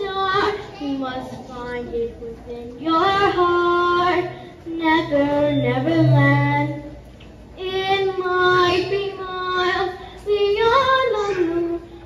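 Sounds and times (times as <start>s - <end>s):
child singing: 0.0s - 6.9s, 7.6s - 12.0s.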